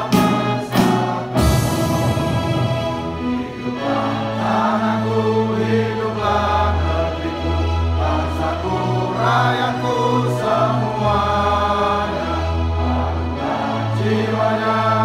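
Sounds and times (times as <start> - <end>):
sustained bass notes: 0.0 - 5.8
instrumental accompaniment: 0.0 - 15.0
people singing together: 0.0 - 15.0.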